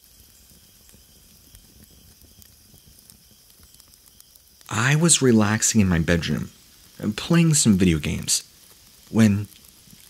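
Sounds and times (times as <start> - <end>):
faint steady hiss: 0.0 - 10.0
soft crackles: 0.0 - 10.0.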